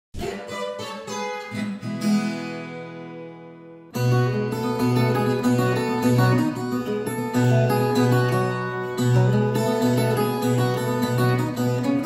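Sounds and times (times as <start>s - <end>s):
plucked guitar melody with chords: 0.2s - 12.0s.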